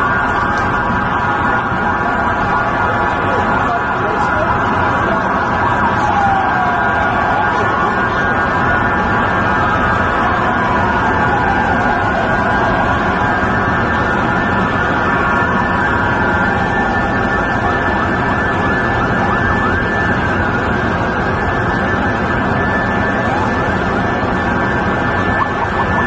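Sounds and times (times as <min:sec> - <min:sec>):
emergency sirens wailing: 0:00.0 - 0:26.0
street noise: 0:00.0 - 0:26.0.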